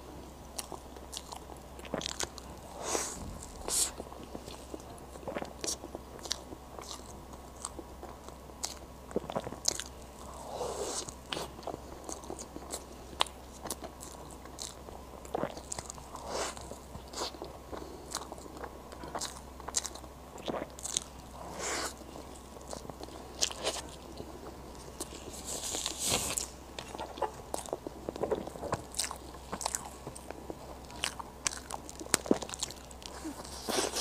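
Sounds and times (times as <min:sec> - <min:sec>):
wet chewing: 0:00.5 - 0:34.0.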